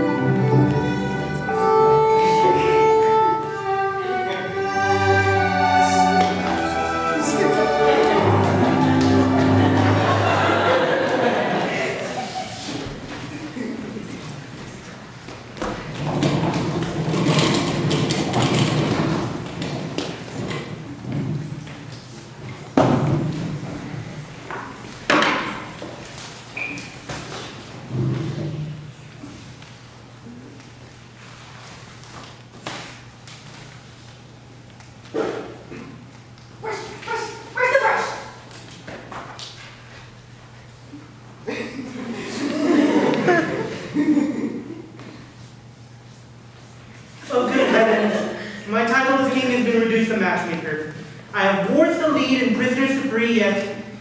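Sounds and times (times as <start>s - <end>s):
violin-led string music: 0.0s - 10.9s.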